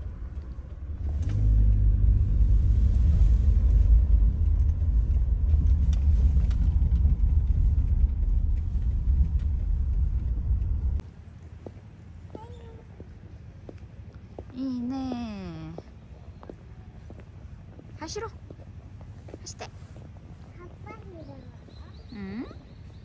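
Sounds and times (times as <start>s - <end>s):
car rumble inside cabin: 0.0s - 11.0s
outdoor ambience: 0.0s - 23.0s.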